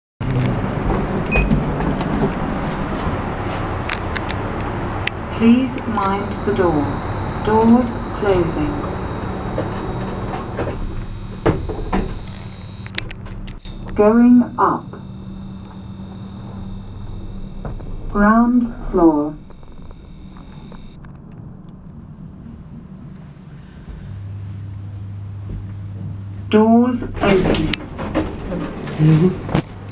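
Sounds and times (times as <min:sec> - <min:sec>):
lift low rumble: 0:00.2 - 0:29.9.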